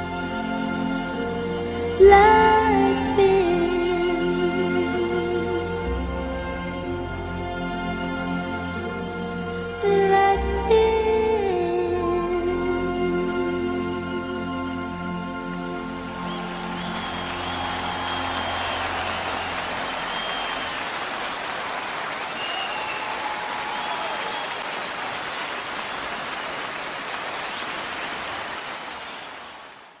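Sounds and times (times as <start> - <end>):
audience applause and cheering: 16.0 - 30.0
high calls from audience: 16.2 - 29.5.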